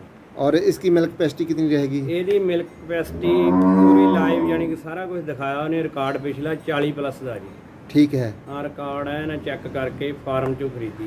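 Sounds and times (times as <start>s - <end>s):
cow mooing: 3.1s - 4.8s.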